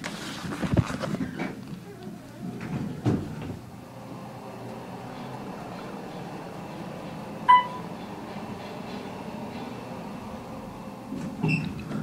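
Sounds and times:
elevator hum: 0:02.4 - 0:12.0
elevator chime: 0:07.4 - 0:08.0.

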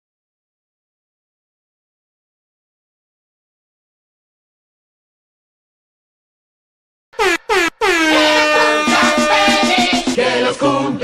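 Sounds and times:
short horn blasts dropping in pitch: 0:07.2 - 0:10.0
song: 0:07.2 - 0:10.4.

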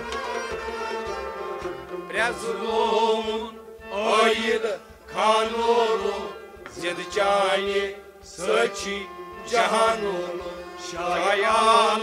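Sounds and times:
sustained musical accompaniment: 0:00.0 - 0:12.0
man singing chant-like phrases: 0:02.1 - 0:12.0.

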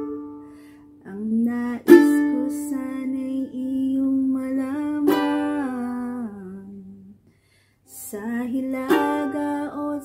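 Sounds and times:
ukulele strum: 0:00.0 - 0:06.7, 0:08.5 - 0:10.0.

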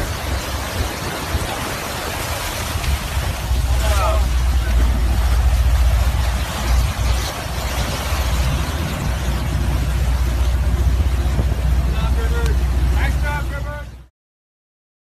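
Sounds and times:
wind rumble on microphone: 0:00.0 - 0:13.9
water rushing and sloshing: 0:00.0 - 0:14.1.

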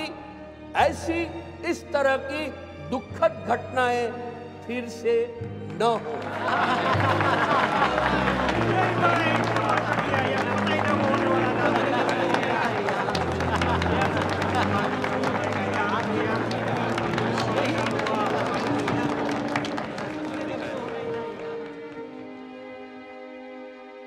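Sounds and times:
crowd cheering and clapping: 0:06.0 - 0:22.6.

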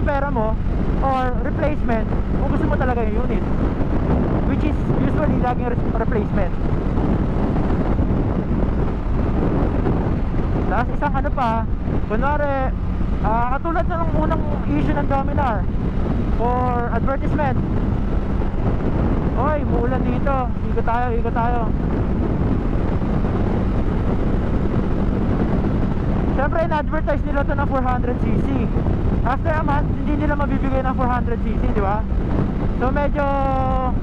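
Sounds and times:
motorcycle running: 0:00.0 - 0:34.0
road noise: 0:00.0 - 0:34.0
wind rushing over microphone: 0:00.0 - 0:34.0.

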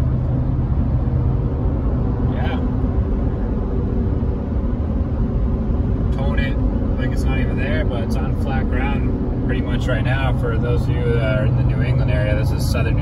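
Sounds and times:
road noise inside cab: 0:00.0 - 0:13.0
truck engine drone: 0:00.0 - 0:13.0.

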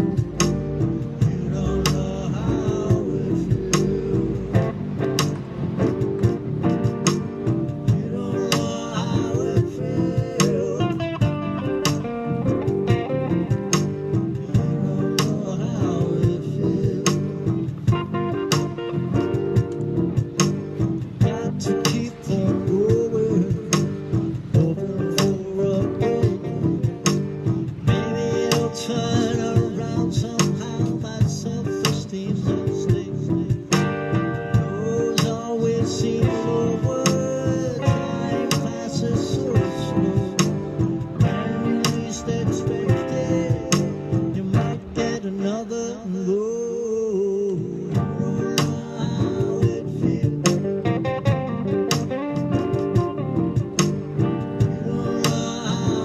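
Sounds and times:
percussive beat: 0:00.0 - 0:45.0, 0:47.9 - 0:56.0
electric guitar blues groove: 0:00.0 - 0:56.0.

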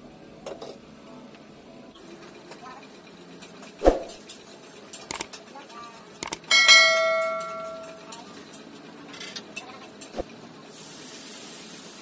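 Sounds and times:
quick clicks: 0:05.0 - 0:05.3, 0:06.2 - 0:06.5
bell ding: 0:06.5 - 0:08.1.

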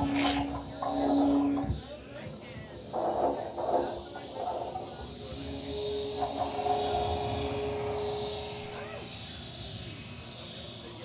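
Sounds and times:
synthesizer held tone: 0:00.0 - 0:09.6.

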